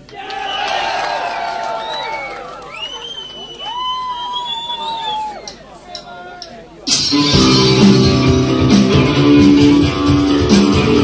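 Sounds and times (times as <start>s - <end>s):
live rock band playing: 6.9s - 11.0s.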